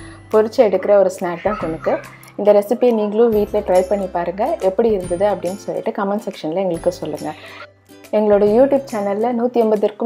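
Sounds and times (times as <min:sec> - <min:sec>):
soft background music: 0:00.0 - 0:10.0
person speaking: 0:00.8 - 0:02.3.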